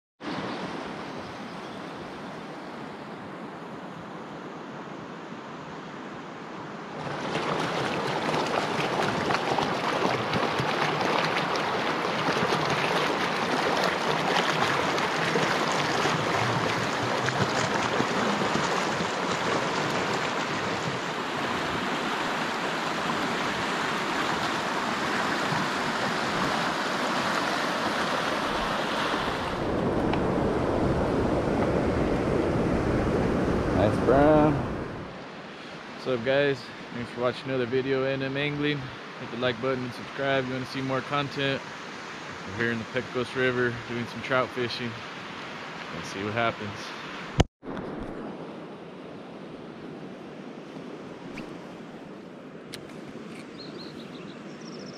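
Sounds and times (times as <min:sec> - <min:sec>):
river water rushing over rocks: 0:06.9 - 0:30.0.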